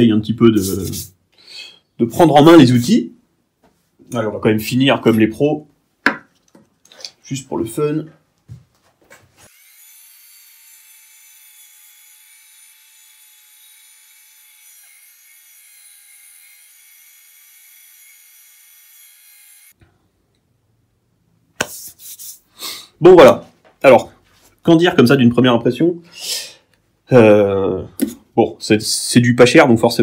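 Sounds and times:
wood lathe cutting with whine: 9.5 - 19.7.

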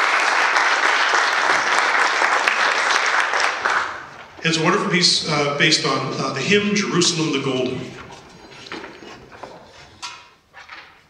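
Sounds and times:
sharp noise in concert hall: 0.0 - 11.0.

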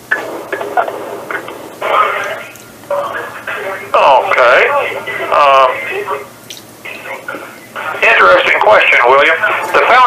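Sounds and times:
man talking over telephone line: 1.8 - 10.0.

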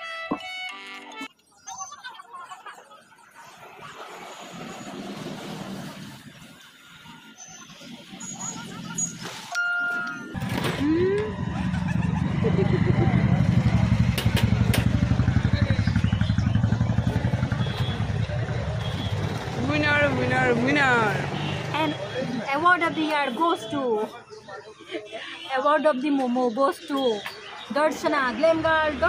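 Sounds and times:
voices: 7.1 - 29.0
short beep: 9.6 - 10.4
motorcycle engine idling: 11.8 - 19.8.

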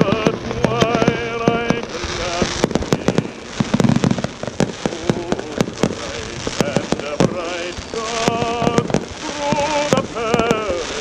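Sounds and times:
crackle of bursting shells: 0.0 - 11.0
fireworks sharp bangs: 0.0 - 11.0.

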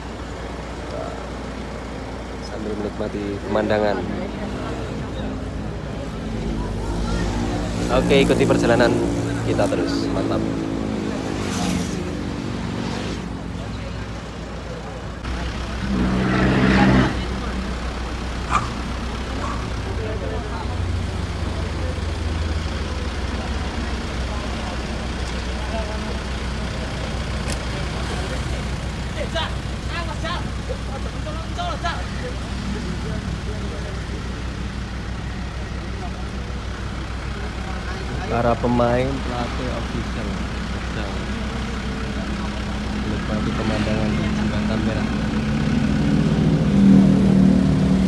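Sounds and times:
people's voices: 0.0 - 48.0
road traffic passing: 0.0 - 48.0.

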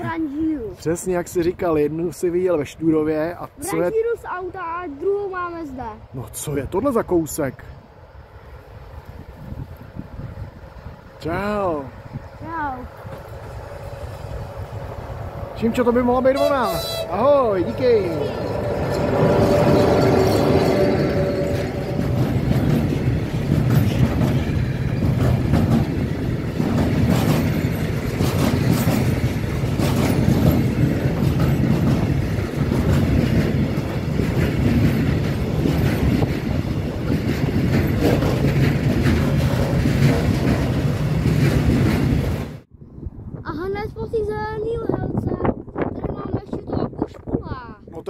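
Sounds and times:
freight train wheels clattering on rails: 12.2 - 42.7
person speaking: 15.6 - 18.8.

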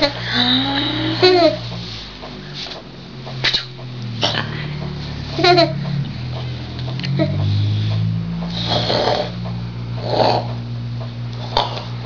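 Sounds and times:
woman's throaty growling hum: 0.0 - 1.6, 10.0 - 10.6
short noisy puffs: 1.6 - 10.6.

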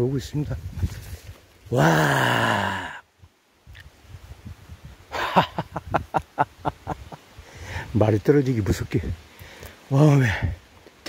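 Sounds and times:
wind rumbling on microphone: 0.0 - 1.8, 3.2 - 9.3, 10.2 - 10.7.

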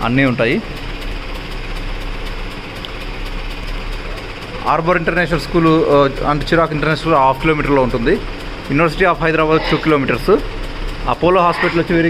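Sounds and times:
diesel truck engines idling: 0.0 - 12.0.

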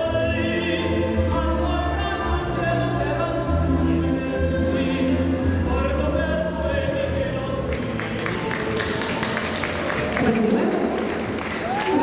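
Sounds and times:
audience applauding: 7.7 - 12.0.

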